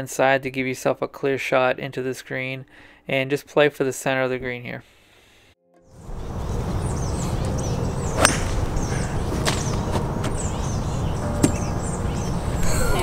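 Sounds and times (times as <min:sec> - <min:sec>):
small birds chirping: 0:05.9 - 0:13.0
sharp crack: 0:08.2 - 0:08.8.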